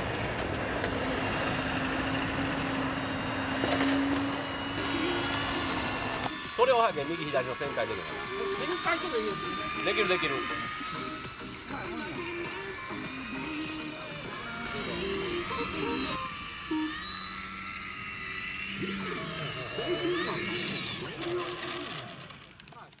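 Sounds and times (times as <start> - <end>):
model airplane motor whining: 0.0 - 23.0
voices talking: 4.5 - 17.0.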